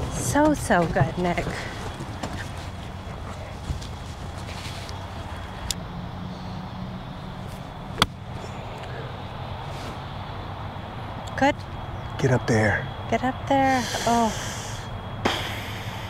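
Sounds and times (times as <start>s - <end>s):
low background hum: 0.0s - 16.0s
golf club striking ball: 8.0s - 8.2s.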